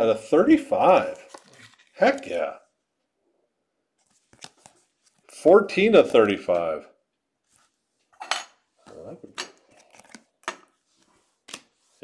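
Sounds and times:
plastic card cases clicking: 0:09.4 - 0:10.7.

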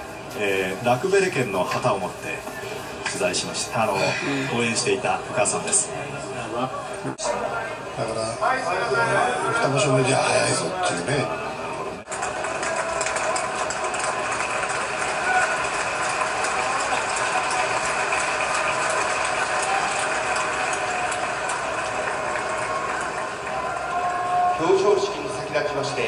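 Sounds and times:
crowd chatter: 0:00.0 - 0:14.2.

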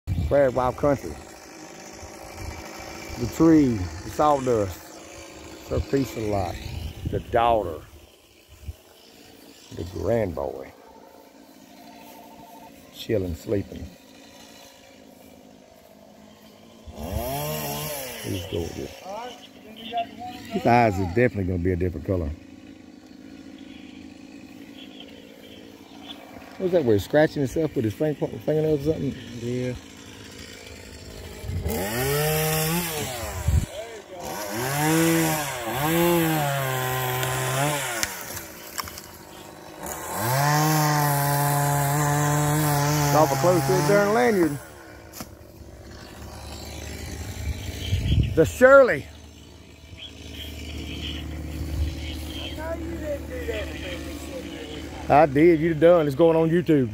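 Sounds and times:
chainsaw revving and cutting: 0:00.1 - 0:56.9.

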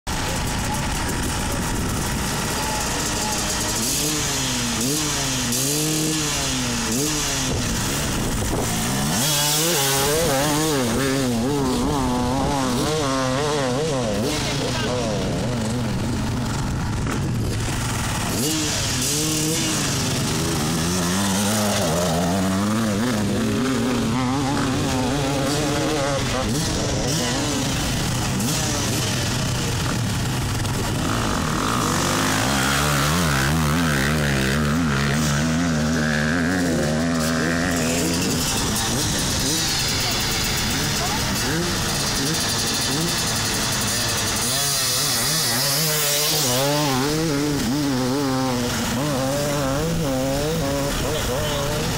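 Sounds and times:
dirt bike engines revving: 0:00.0 - 0:51.9
dirt bike accelerating away: 0:00.1 - 0:51.9.

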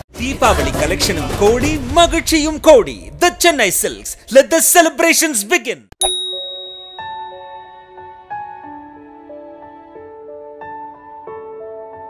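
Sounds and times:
bright chime: 0:06.0 - 0:08.2.

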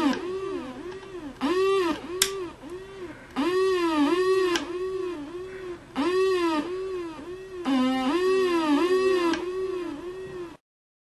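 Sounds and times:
swooping electronic siren tone: 0:00.0 - 0:10.6.

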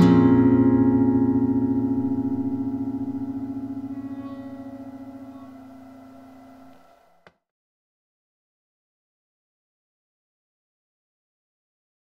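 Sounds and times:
acoustic guitar chord ringing: 0:00.0 - 0:07.3.

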